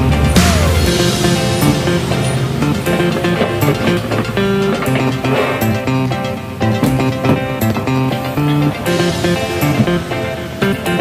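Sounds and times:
guitar music over a beat: 0:00.0 - 0:11.0.

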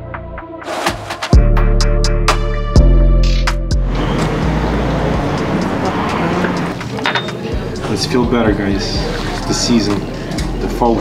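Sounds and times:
music with deep bass and hi-hat: 0:00.0 - 0:06.8
faint voices: 0:03.9 - 0:11.0.

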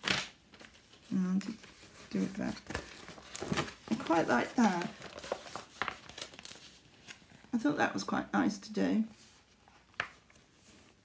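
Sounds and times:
magazine paper rustling: 0:00.0 - 0:08.1, 0:09.0 - 0:11.0.

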